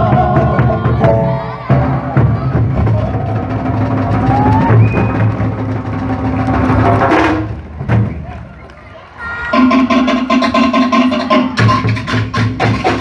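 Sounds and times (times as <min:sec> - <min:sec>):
wooden slit drums: 0:09.5 - 0:13.0.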